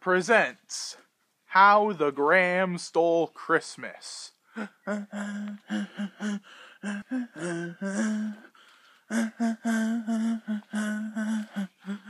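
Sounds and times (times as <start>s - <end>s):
breathy hisses: 4.5s - 12.0s
person humming choppy syllables: 4.5s - 12.0s.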